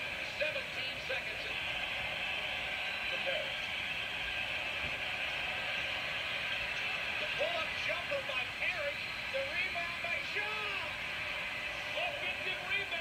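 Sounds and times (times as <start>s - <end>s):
arena crowd roar: 1.2s - 13.0s.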